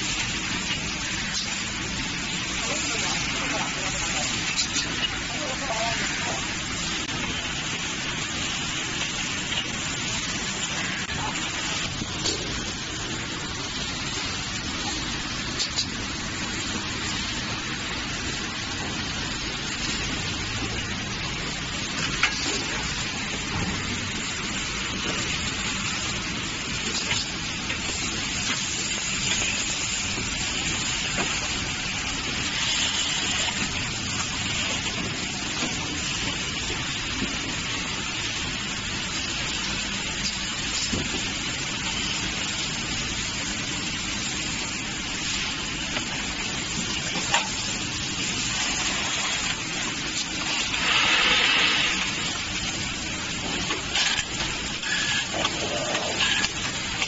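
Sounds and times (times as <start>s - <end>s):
packaging machinery hissing: 47.8s - 57.0s.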